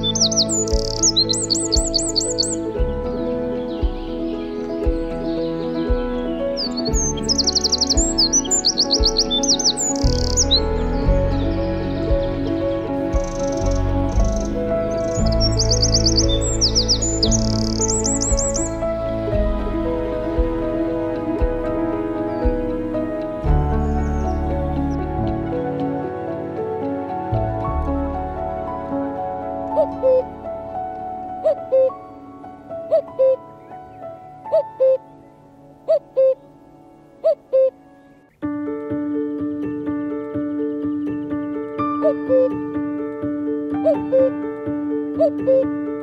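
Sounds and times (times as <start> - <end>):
cuckoo calling: 0.0 - 19.4, 29.6 - 30.4, 31.2 - 38.4, 40.9 - 42.6, 43.8 - 44.4, 45.1 - 45.8
soft background music: 0.0 - 46.0
songbird singing: 0.0 - 46.0.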